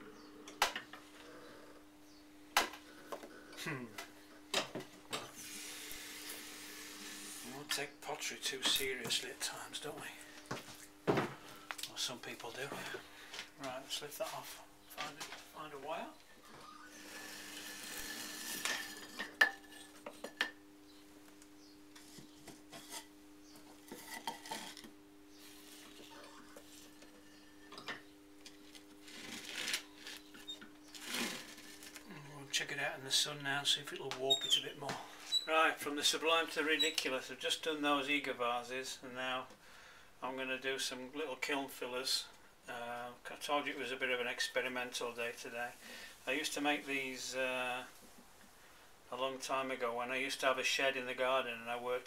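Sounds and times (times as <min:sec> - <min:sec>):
pottery wheel hum: 0:00.0 - 0:41.8
clay vase scraping hiss: 0:05.2 - 0:07.8, 0:16.6 - 0:20.0, 0:29.0 - 0:32.0
wire scraping through clay: 0:29.0 - 0:32.0.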